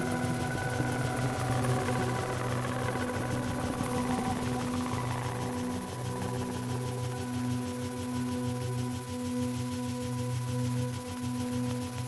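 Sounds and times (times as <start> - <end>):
ambient electronic drone music: 0.0 - 12.0.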